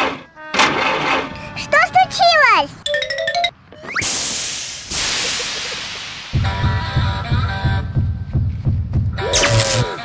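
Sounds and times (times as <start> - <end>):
hiss-like noise swells: 4.0 - 6.4
background music with steady beat: 6.4 - 9.2.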